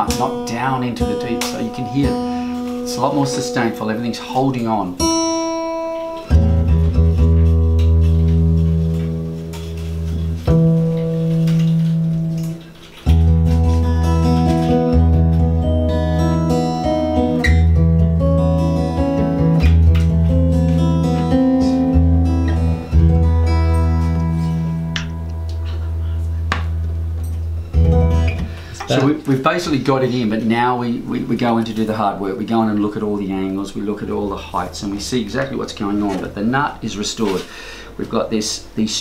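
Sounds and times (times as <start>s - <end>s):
picked guitar notes: 0.0s - 38.8s
acoustic guitar strummed chord: 5.0s - 29.2s.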